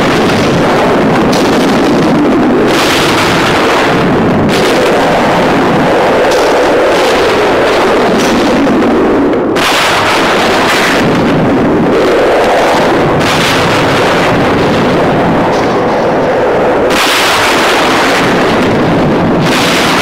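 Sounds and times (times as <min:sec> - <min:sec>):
rumbling explosion roar: 0:00.0 - 0:20.0
sharp explosion blasts: 0:00.0 - 0:20.0.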